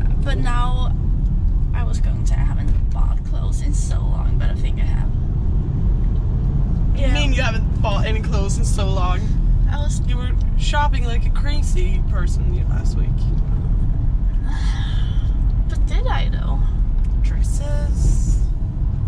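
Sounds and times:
woman talking: 0:00.0 - 0:00.9, 0:01.8 - 0:05.2, 0:14.4 - 0:18.5
car cabin road rumble: 0:00.0 - 0:19.0.

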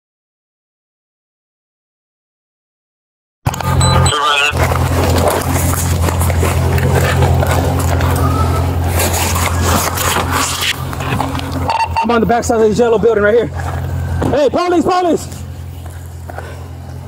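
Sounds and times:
car engine humming: 0:03.5 - 0:17.0
gear scraping and knocking: 0:04.6 - 0:11.7.

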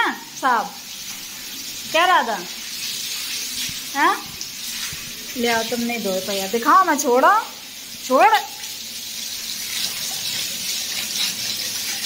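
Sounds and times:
hose water splashing on concrete: 0:00.4 - 0:12.0.

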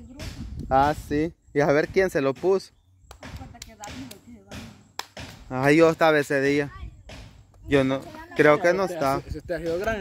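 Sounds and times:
sharp tap: 0:01.8 - 0:05.5.

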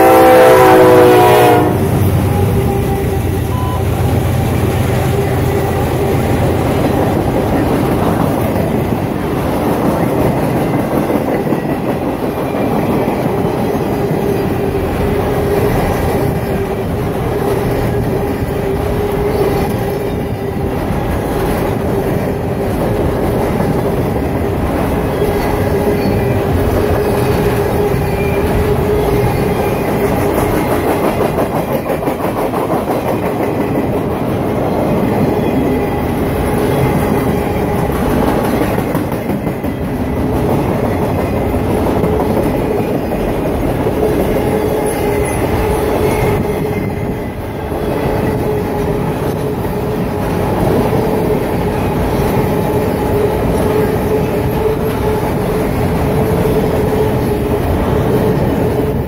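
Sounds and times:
train wheels rumbling over rails: 0:00.0 - 0:59.0.

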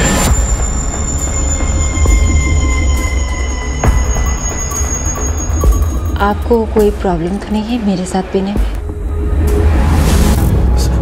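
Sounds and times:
sustained high tones: 0:00.0 - 0:09.5.

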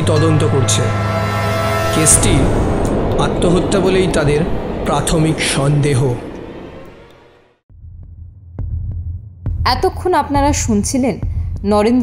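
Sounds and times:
low throbbing hum: 0:00.0 - 0:09.8
woman speaking: 0:09.7 - 0:12.0.

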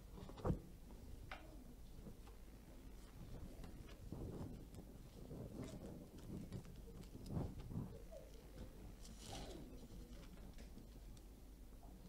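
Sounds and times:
faint room murmur: 0:00.0 - 0:12.0
paper rustling: 0:03.0 - 0:11.2.

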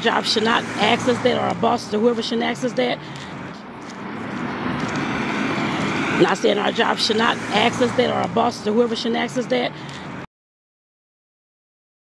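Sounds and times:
vehicle passing: 0:00.0 - 0:10.3.

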